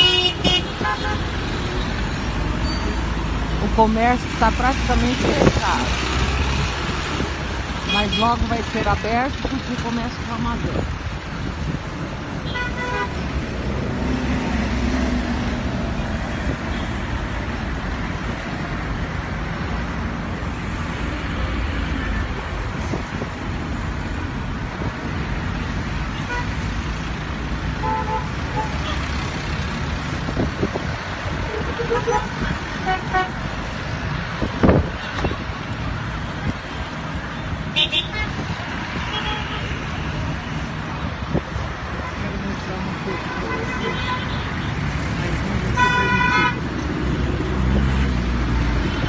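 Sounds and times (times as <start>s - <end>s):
car horn toots: 0.0s - 1.2s, 45.8s - 46.6s
traffic passing: 0.0s - 49.0s.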